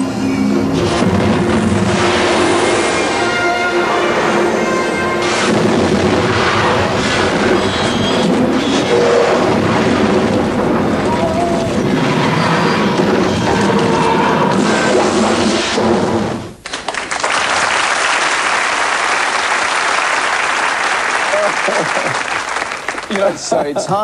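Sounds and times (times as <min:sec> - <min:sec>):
film soundtrack music: 0:00.0 - 0:07.5
heavy rumbling and booming effects: 0:00.0 - 0:16.6.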